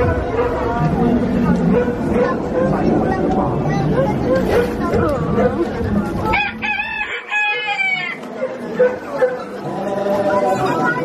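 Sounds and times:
faint voices: 0:00.0 - 0:11.0
rooster crowing: 0:06.3 - 0:08.2.

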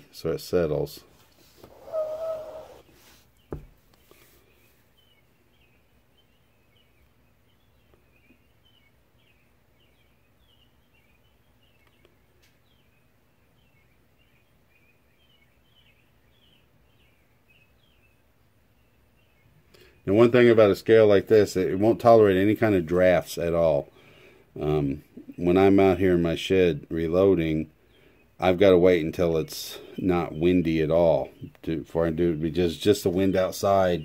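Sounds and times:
small bird chirping: 0:01.3 - 0:20.1.

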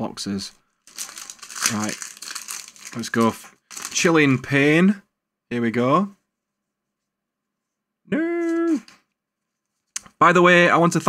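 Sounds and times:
person speaking: 0:00.0 - 0:06.2, 0:08.1 - 0:09.0.

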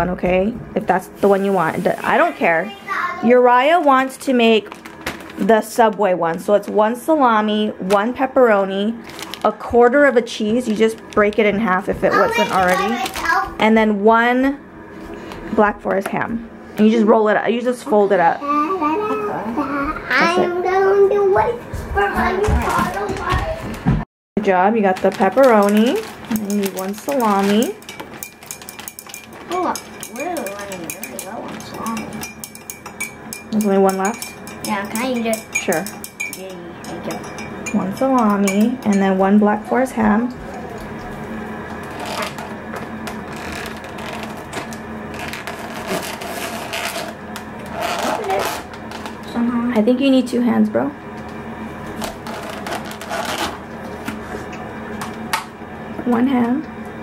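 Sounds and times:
plastic bag crinkling: 0:04.6 - 0:05.4, 0:09.0 - 0:09.6, 0:12.2 - 0:13.4, 0:24.8 - 0:30.8, 0:41.9 - 0:49.2.

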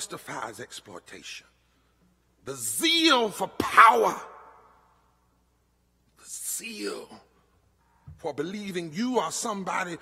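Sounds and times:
man preaching: 0:00.0 - 0:01.6, 0:02.4 - 0:04.9, 0:06.1 - 0:07.4, 0:08.2 - 0:10.0.

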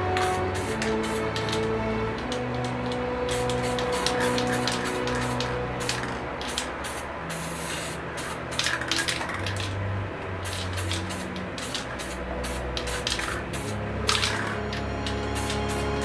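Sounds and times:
aerosol spray can hissing: 0:00.2 - 0:01.6, 0:03.3 - 0:09.7, 0:10.4 - 0:14.6, 0:15.2 - 0:16.0.

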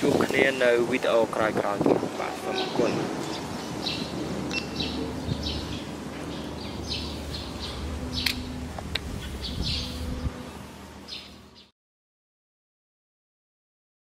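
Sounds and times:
small birds chirping: 0:02.6 - 0:11.7
sharp clicks: 0:08.2 - 0:09.1.

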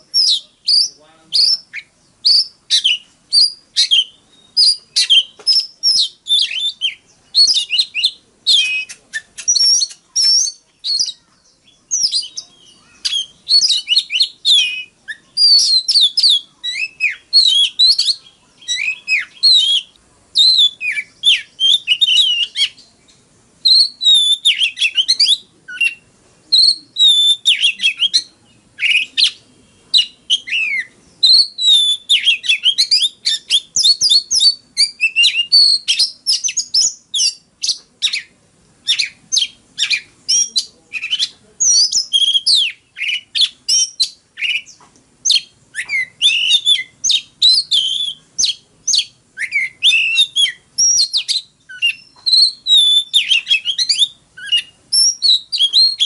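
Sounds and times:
bird singing whistled phrases: 0:00.0 - 0:56.0.

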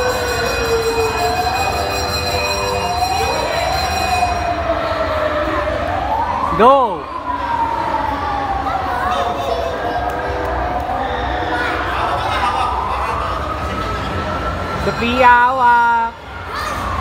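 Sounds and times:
siren whoop: 0:00.0 - 0:15.3
crowd chatter: 0:00.0 - 0:17.0
siren wailing: 0:00.0 - 0:17.0.

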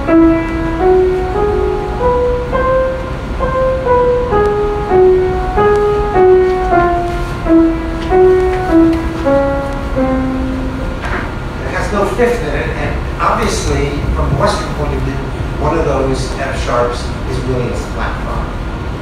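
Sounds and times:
keyboard-like melody from laptop: 0:00.0 - 0:11.1.

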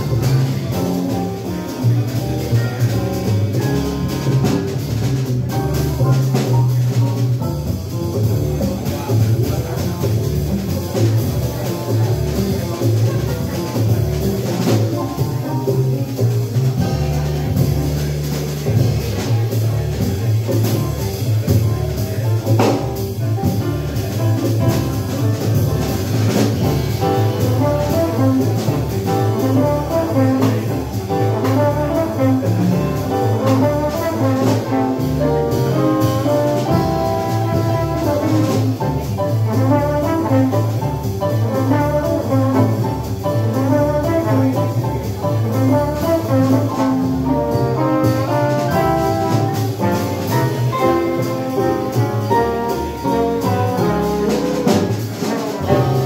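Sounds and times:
double bass: 0:00.0 - 0:56.0
drums: 0:00.0 - 0:56.0
piano: 0:00.0 - 0:56.0
trombone melody: 0:24.4 - 0:56.0.

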